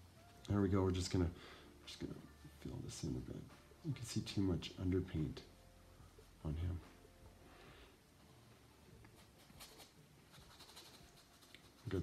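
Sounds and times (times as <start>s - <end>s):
paintbrush strokes: 8.2s - 12.0s.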